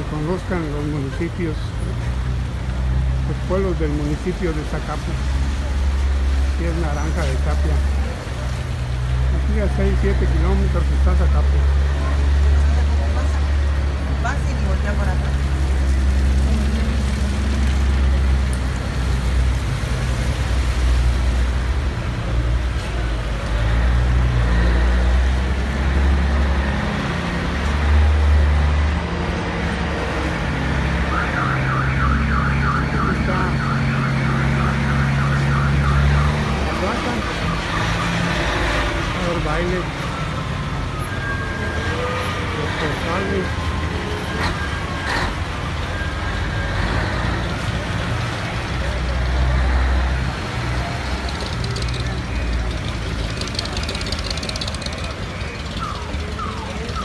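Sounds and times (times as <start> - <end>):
vehicle engines rumbling: 0.0 - 57.0.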